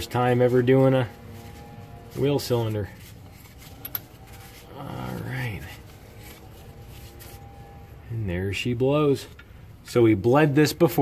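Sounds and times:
metal part rubbing and clicking: 3.0s - 4.7s.

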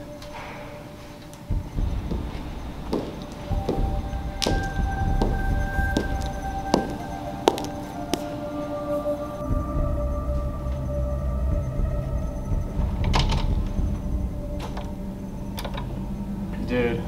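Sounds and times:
low rumble: 0.0s - 17.0s
suspenseful background music: 0.0s - 17.0s
boot heels on hard floor: 1.5s - 8.3s.

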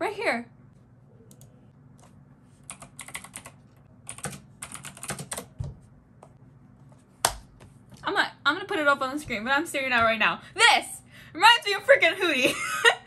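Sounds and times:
computer keyboard typing: 1.3s - 5.6s.

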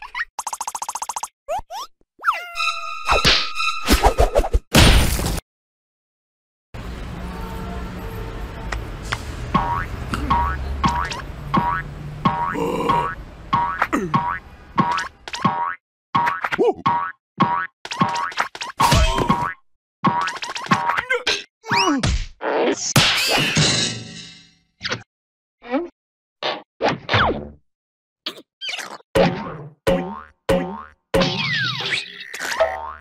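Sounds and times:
gliding squeals: 2.5s - 4.3s.

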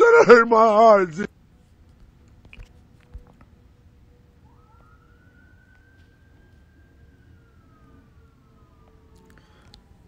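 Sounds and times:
faint siren wail: 2.7s - 10.0s.

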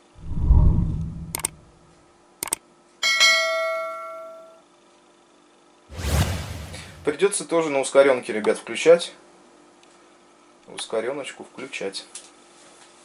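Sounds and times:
low rumble: 0.0s - 1.8s, 5.9s - 7.2s
sharp clicks: 1.3s - 1.6s
notification bell chime: 3.0s - 4.6s.

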